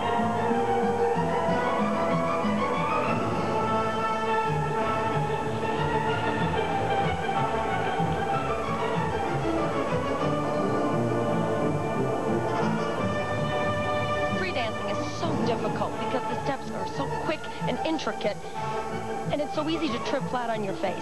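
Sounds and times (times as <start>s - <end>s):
orchestral music with strings: 0.0s - 21.0s.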